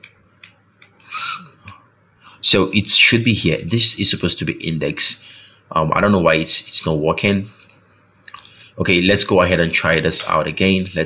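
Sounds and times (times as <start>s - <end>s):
soft breath hiss: 0.2s - 10.5s.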